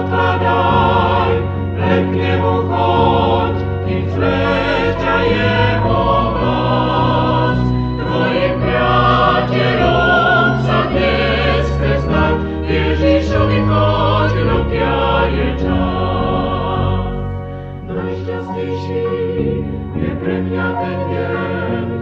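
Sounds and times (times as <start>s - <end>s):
steady low notes: 0.0s - 22.0s
vocal group singing: 0.0s - 22.0s.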